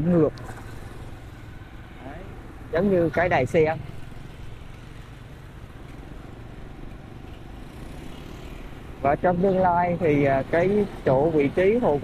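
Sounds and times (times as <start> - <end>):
motorbike traffic noise: 0.0 - 12.0.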